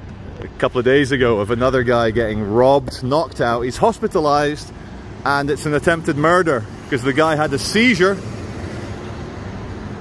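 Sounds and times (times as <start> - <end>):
lorry passing rumble and hiss: 0.7 - 10.0.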